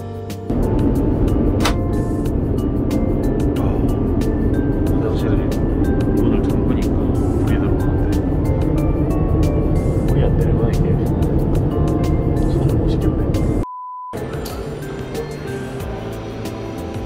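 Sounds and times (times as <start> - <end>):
background music: 0.0 - 13.6, 14.2 - 17.0
airliner cabin roar: 0.5 - 13.6.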